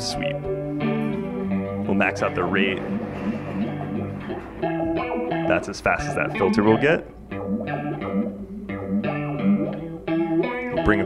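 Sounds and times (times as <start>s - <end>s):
electric guitar with chorus effect: 0.0s - 11.0s.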